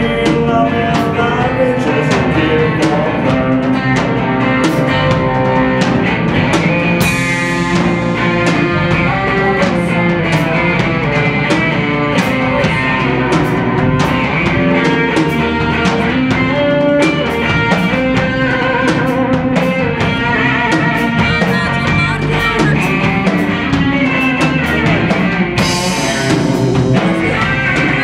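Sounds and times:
drum kit beat: 0.0 - 28.0
electric bass: 0.0 - 28.0
electric guitar: 0.0 - 28.0.

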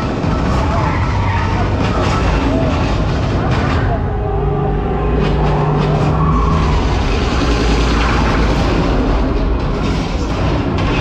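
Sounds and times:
film soundtrack music: 0.0 - 11.0
steady engine-like drone: 0.0 - 11.0
truck engines with deep rumble: 0.0 - 11.0.

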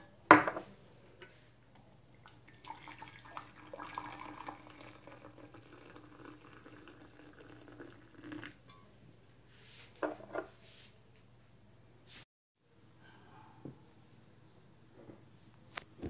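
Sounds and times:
hot water pouring into mug: 2.2 - 8.6.

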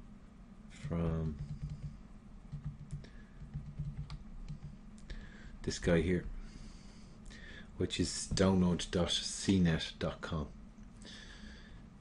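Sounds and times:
light clicks and taps on laptop: 1.2 - 4.8.

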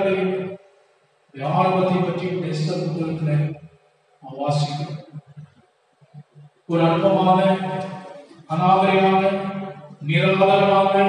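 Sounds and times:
man praying in intoned voice: 0.0 - 0.6, 1.4 - 3.6, 4.2 - 5.5, 6.2 - 11.0.

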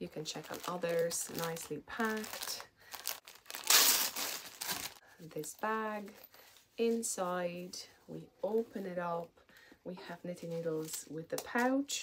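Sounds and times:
packaging wrapper crinkling: 0.3 - 5.0.

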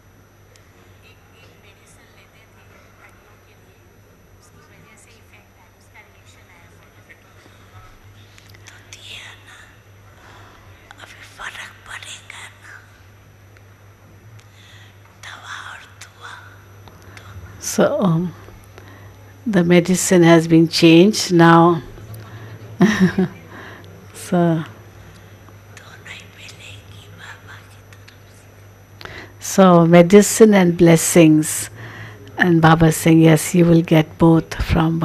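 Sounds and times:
steady low hum: 0.0 - 35.0
people speaking quietly: 0.5 - 9.7
woman speaking in hushed voice: 0.8 - 7.9, 15.2 - 22.5, 24.1 - 24.8, 29.3 - 35.0.

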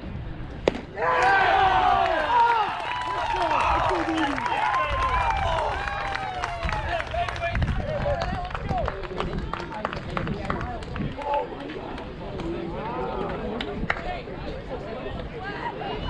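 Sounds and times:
people calling out and chattering: 0.1 - 16.0.

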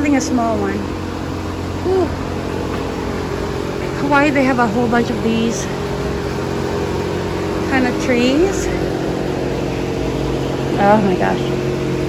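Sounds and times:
steady mechanical hum: 0.0 - 12.0
woman saying ooh: 1.8 - 2.2.

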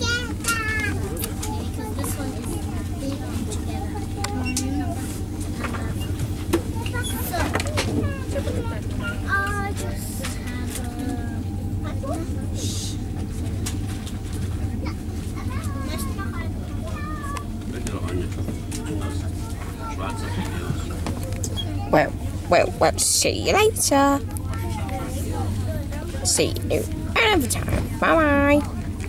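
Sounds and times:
people talking: 0.0 - 29.0
train cabin rumble and hum: 0.0 - 29.0.

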